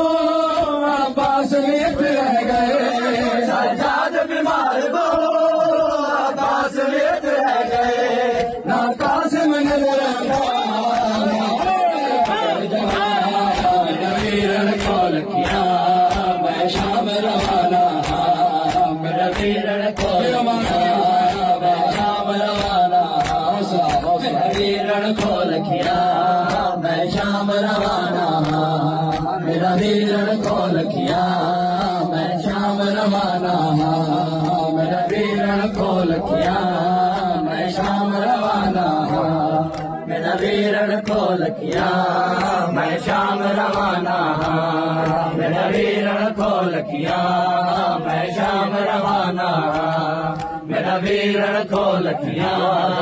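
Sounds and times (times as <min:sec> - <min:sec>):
men chanting a lament: 0:00.0 - 0:53.0.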